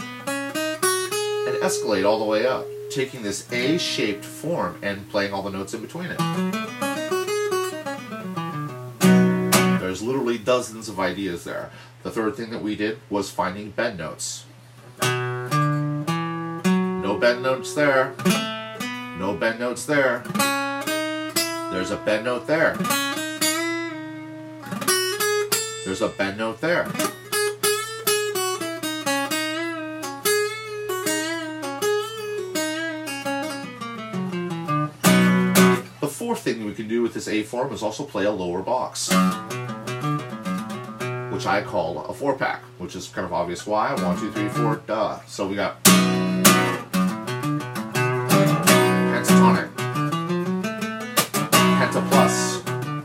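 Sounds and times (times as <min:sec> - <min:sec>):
acoustic guitar notes and chords: 0:00.0 - 0:12.4, 0:14.5 - 0:53.0.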